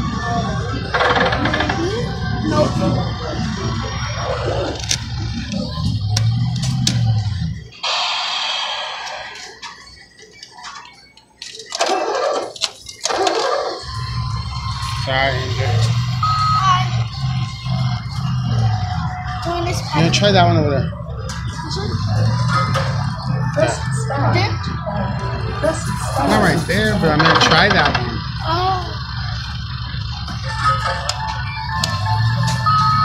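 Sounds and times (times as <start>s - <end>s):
indistinct voices: 0.0s - 33.0s
electronic game music: 7.0s - 10.6s, 13.8s - 33.0s.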